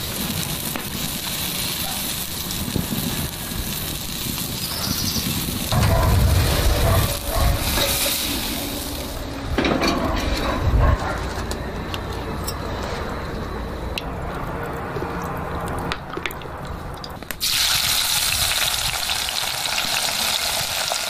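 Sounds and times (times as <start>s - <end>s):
steak sizzling on grill: 0.0s - 9.3s, 17.4s - 21.0s.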